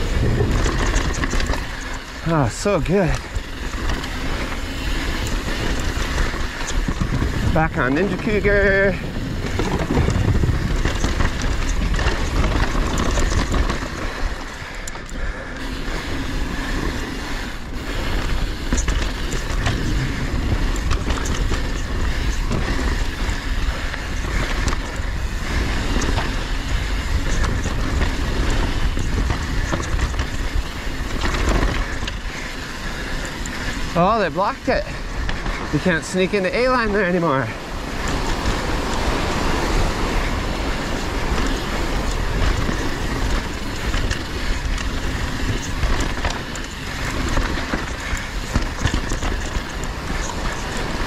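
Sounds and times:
bike knocking and rattling: 0.0 - 51.0
bike tyres rushing on dirt: 0.0 - 51.0
wind: 0.0 - 51.0.

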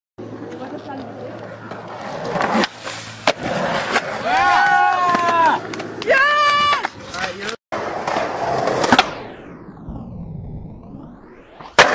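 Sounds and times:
skateboard wheels rolling: 0.2 - 9.6, 10.4 - 11.9
skateboard clacks: 0.4 - 8.2
person shouting: 4.2 - 6.8.

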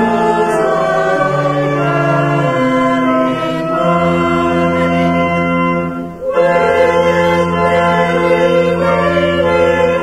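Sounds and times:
choir singing a hymn: 0.0 - 10.0
organ accompaniment: 0.0 - 10.0.

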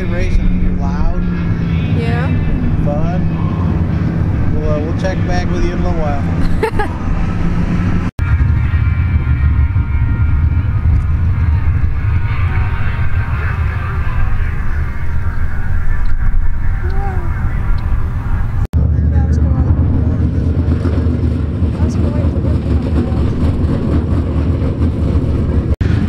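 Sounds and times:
low engine drone: 0.0 - 26.0
race car engines running: 0.0 - 26.0
person speaking: 2.0 - 2.4.

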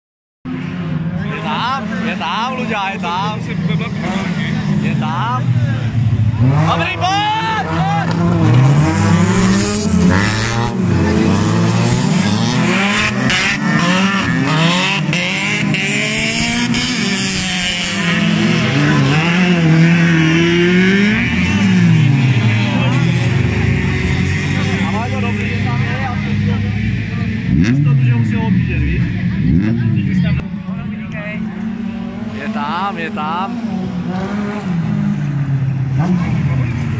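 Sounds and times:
race car engines revving: 0.5 - 36.9.

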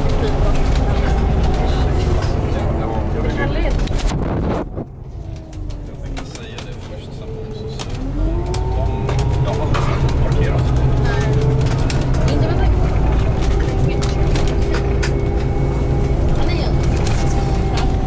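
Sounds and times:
bus engine rumble and whine: 0.0 - 18.0
road noise: 0.0 - 18.0.

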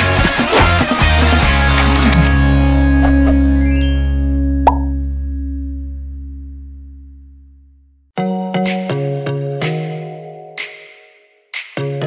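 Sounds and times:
pop sound effect: 4.6 - 5.0.

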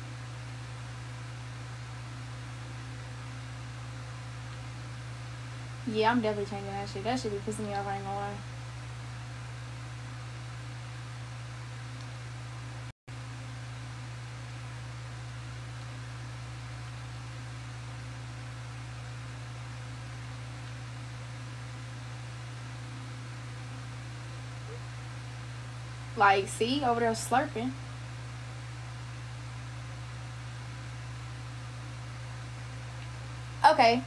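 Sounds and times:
constant even hiss: 0.0 - 34.0
steady low hum: 0.0 - 34.0.

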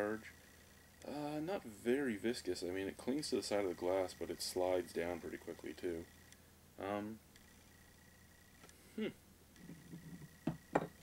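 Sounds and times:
man humming hmm: 8.9 - 9.2
glass set down on countertop: 10.5 - 11.0.

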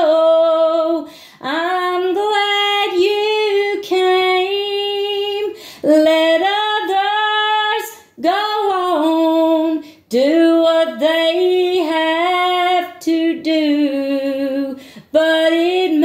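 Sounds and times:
woman singing gospel solo: 0.0 - 16.0.

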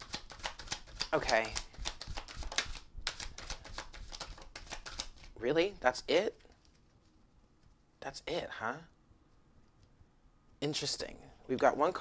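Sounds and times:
cards being shuffled: 0.0 - 5.4, 6.1 - 7.9.

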